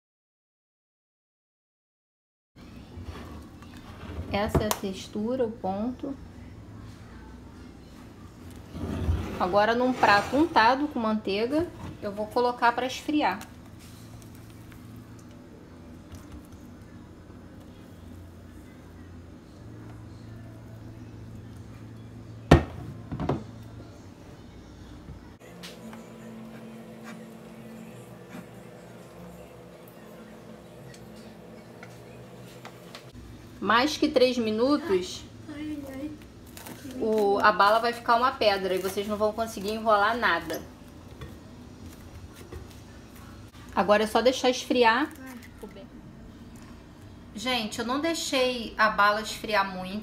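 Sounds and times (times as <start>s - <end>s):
low background hum: 2.6s - 50.0s
spatula scraping saucepan: 8.7s - 10.8s
steady low hum: 13.5s - 36.6s.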